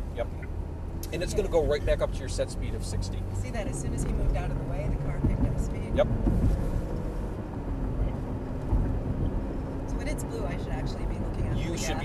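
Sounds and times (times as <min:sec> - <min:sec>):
car engine and tyre road noise: 0:00.0 - 0:12.0.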